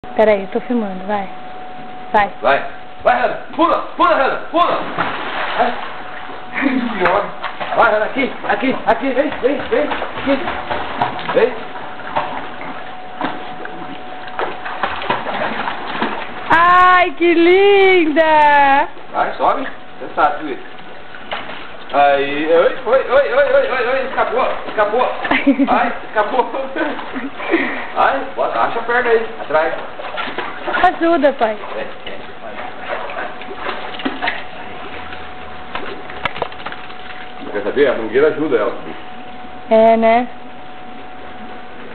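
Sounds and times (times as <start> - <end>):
dog swimming and splashing water: 4.6 - 18.4, 19.2 - 39.0.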